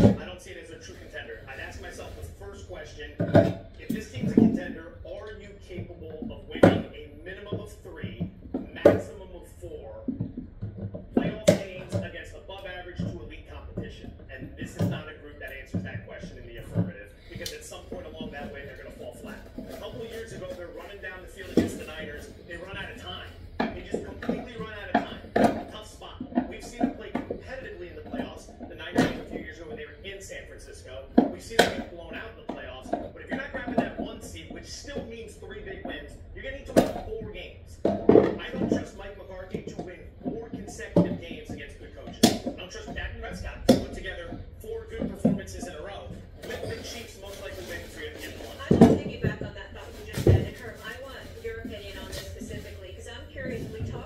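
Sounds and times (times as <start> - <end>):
background talk: 0.0 - 54.0
indistinct speech from a device: 0.0 - 54.0.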